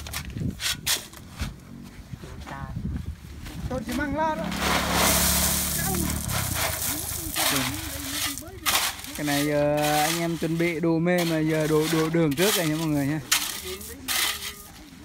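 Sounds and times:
crushed stone pouring and rattling: 4.4s - 14.8s.

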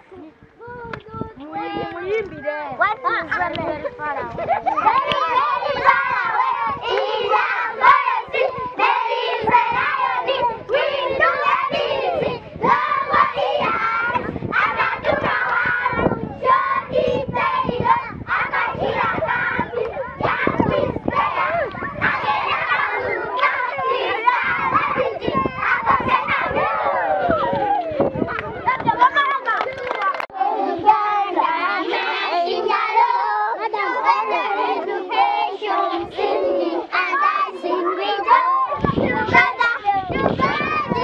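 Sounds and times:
children singing together: 4.5s - 27.4s, 30.3s - 41.0s.

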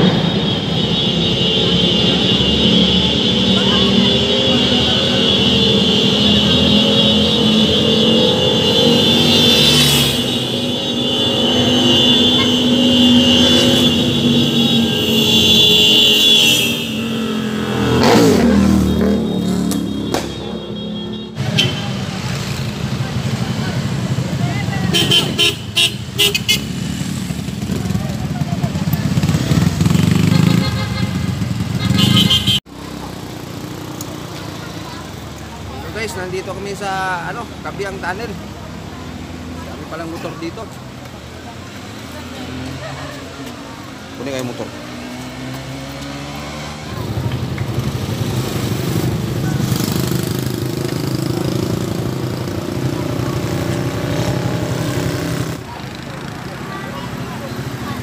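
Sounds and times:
motorcycle engines revving: 0.0s - 58.0s
motorcycle passing by: 2.2s - 20.2s, 26.5s - 40.7s, 41.4s - 58.0s.

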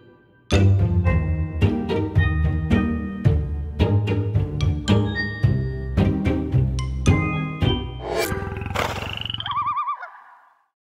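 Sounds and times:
swoosh: 8.0s - 9.4s
warbling tone: 8.0s - 10.3s.

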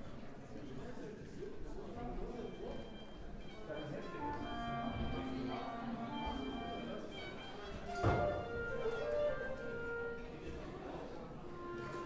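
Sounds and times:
chatter in the room: 0.0s - 12.0s
orchestra instruments practising: 2.8s - 12.0s.

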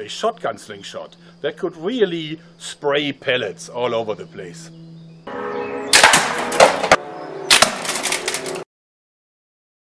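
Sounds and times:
steady music: 4.7s - 8.6s
loud crashes with sharp cracks: 5.9s - 8.5s.

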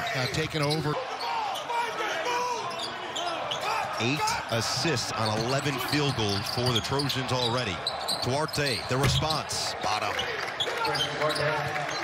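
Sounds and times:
shoe squeaks: 0.0s - 1.8s, 2.5s - 3.8s, 5.0s - 9.4s
players calling out: 0.0s - 12.0s.

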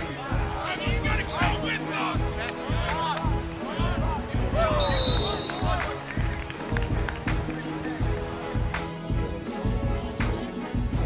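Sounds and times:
music with pulsing beat: 0.1s - 11.0s.

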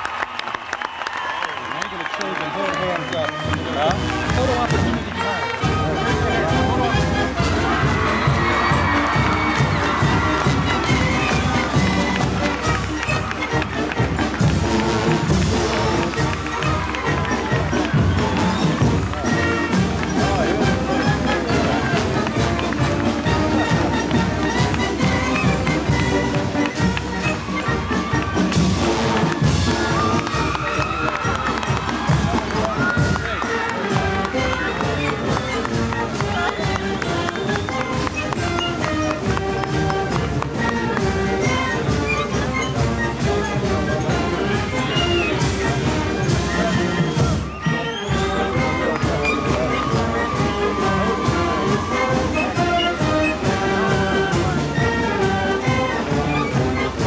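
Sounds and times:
band music: 1.6s - 57.0s
drums playing: 3.5s - 57.0s.

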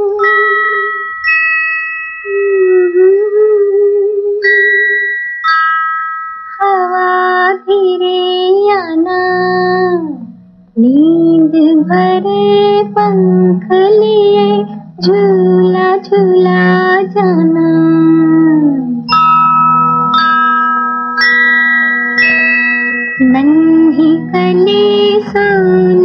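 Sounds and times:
woman singing a slow lullaby: 0.0s - 1.2s, 2.3s - 5.1s, 6.6s - 19.2s, 23.2s - 26.0s
held instrumental notes: 0.0s - 26.0s
low steady accompaniment: 7.0s - 26.0s.

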